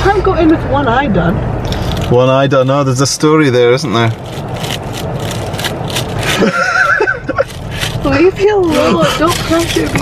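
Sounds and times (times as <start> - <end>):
person squealing with laughter: 6.3 - 7.5.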